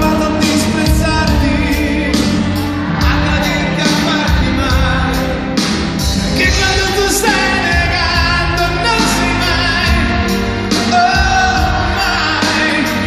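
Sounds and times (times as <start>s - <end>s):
male vocal group singing: 0.0s - 5.5s, 6.4s - 13.0s
drums: 0.0s - 13.0s
orchestra playing: 0.0s - 13.0s
piano: 0.0s - 13.0s.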